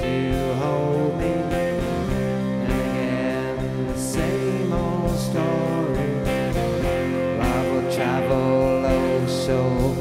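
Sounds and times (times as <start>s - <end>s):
bass guitar: 0.0s - 10.0s
drums: 0.0s - 10.0s
electric guitar chords: 0.0s - 10.0s.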